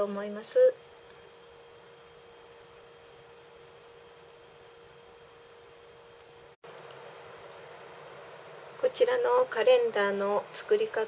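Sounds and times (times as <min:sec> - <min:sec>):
steady low hiss: 0:00.0 - 0:11.0
thin steady hum: 0:00.0 - 0:11.0.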